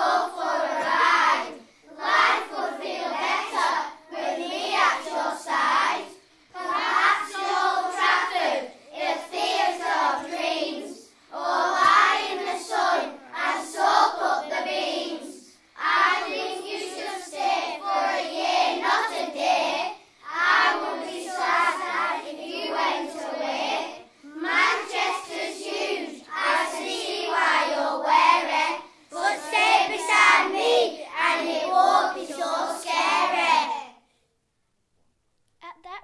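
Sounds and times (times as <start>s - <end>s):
young voices singing: 0.0s - 34.0s.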